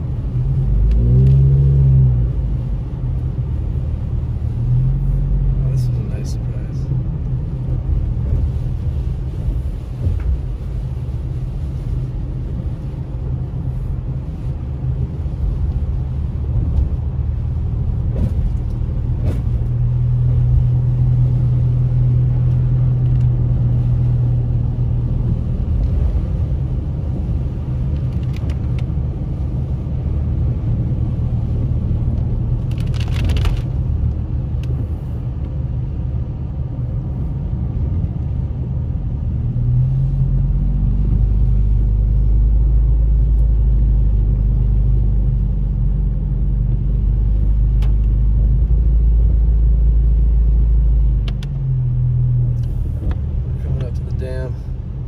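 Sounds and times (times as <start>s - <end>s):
car engine and tyres drone: 0.0s - 55.0s.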